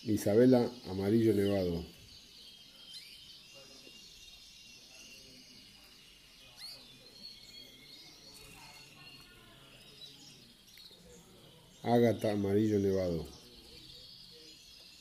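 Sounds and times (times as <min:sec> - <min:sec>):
canaries chirping: 0:00.0 - 0:15.0.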